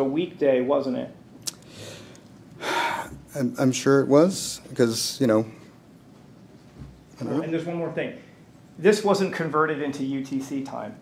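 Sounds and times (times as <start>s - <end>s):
man sharp intake of breath: 1.6s - 3.2s.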